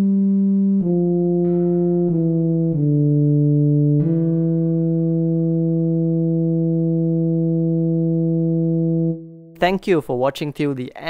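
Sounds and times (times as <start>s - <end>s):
steady low electronic euphonium tone: 0.0s - 9.6s.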